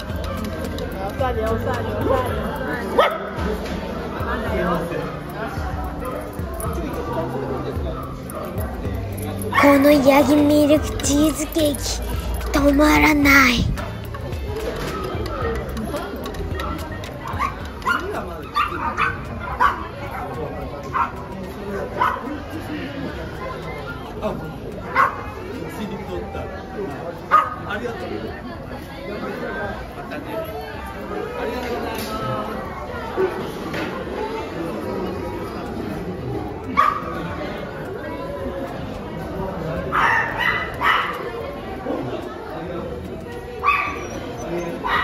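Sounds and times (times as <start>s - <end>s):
crowd chatter: 0.0s - 45.0s
dog barking: 3.0s - 3.3s, 17.4s - 20.3s, 36.8s - 37.1s, 39.9s - 41.3s, 43.6s - 45.0s
dog crying high-pitched: 43.7s - 44.8s.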